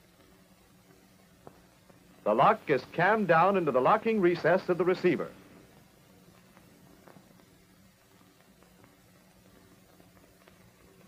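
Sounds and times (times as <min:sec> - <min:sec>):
film soundtrack hum and hiss: 0:00.0 - 0:11.0.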